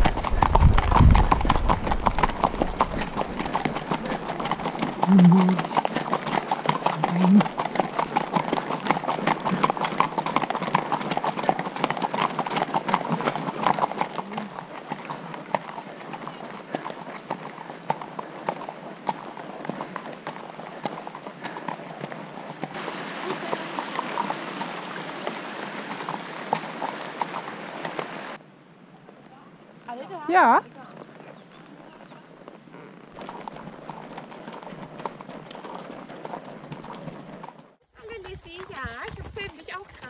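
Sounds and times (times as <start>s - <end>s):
horse hooves clip-clopping: 0.0s - 28.4s, 29.1s - 40.0s.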